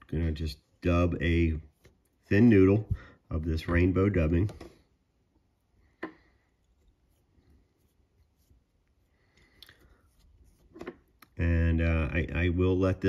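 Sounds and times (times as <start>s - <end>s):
fingers rustling: 5.6s - 11.4s.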